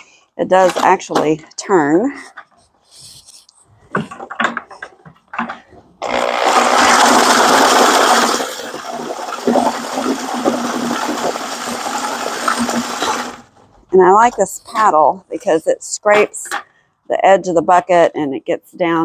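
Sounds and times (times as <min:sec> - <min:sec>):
paddle scraping bucket: 0:00.5 - 0:15.6
electric drill mixing concrete: 0:06.0 - 0:13.5.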